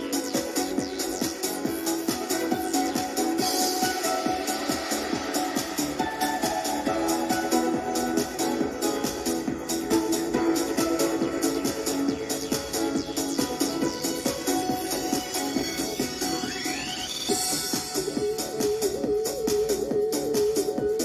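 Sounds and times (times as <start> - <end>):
rising synth sweep: 0.0 - 20.3
electronic dance music from small speaker: 0.0 - 21.0.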